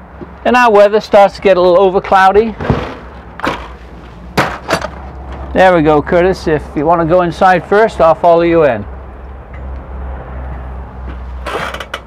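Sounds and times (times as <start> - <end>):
door knocks and clunks: 2.6 - 3.7.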